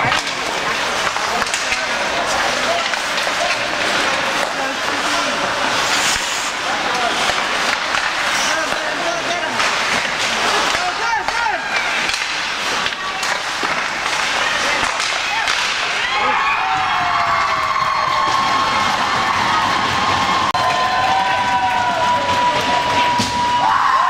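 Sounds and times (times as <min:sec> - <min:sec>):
stick or puck clacks: 0:00.0 - 0:16.0
spectators shouting and cheering: 0:00.0 - 0:24.0.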